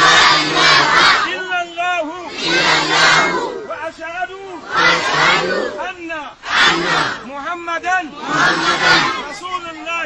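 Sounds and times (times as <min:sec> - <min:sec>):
crowd shouting a chant: 0:00.0 - 0:07.4, 0:08.0 - 0:09.9.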